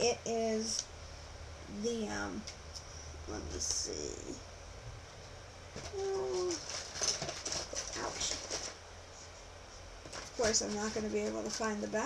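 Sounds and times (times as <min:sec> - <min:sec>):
packages rustling: 0:05.7 - 0:08.8, 0:10.0 - 0:12.0.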